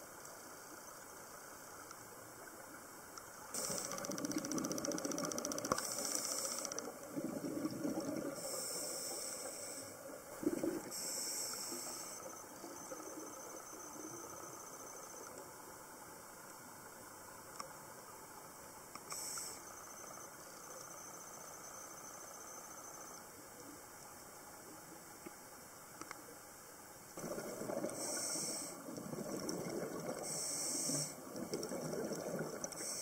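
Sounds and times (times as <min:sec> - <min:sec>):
scuba regulator inhalations hissing: 0:05.8 - 0:06.8, 0:08.3 - 0:10.0, 0:27.8 - 0:28.8, 0:30.2 - 0:31.2, 0:32.7 - 0:33.0
bubbly exhalations underwater: 0:07.0 - 0:08.5, 0:10.3 - 0:10.9, 0:27.2 - 0:30.4, 0:31.0 - 0:32.8.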